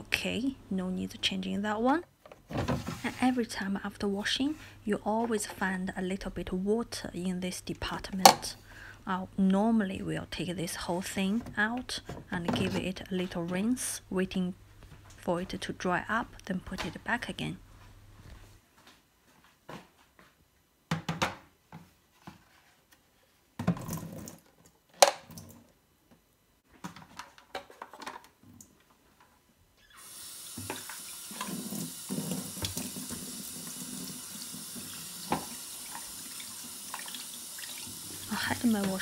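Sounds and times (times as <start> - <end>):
tap water splashing into sink: 30.4 - 38.2.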